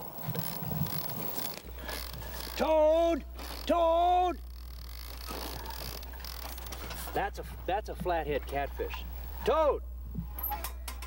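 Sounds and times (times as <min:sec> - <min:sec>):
low steady hum: 0:00.0 - 0:11.0
fishing reel clicker ratcheting: 0:04.4 - 0:06.7.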